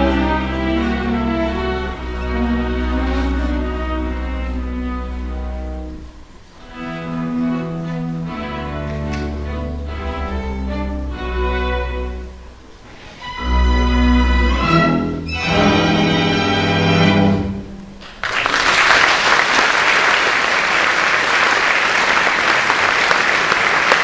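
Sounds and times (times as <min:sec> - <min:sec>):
string orchestra playing classical piece: 0:00.0 - 0:18.0.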